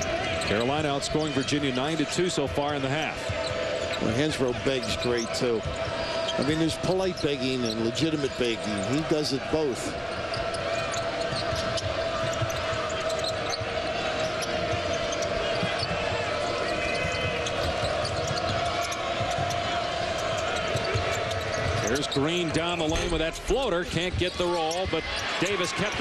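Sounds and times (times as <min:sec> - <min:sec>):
arena crowd din: 0:00.0 - 0:26.0
sneakers squeaking: 0:00.0 - 0:26.0.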